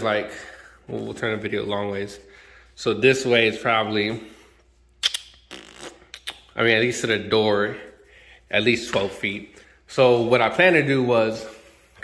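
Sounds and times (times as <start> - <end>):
man speaking: 0.0 - 4.4, 6.2 - 11.7.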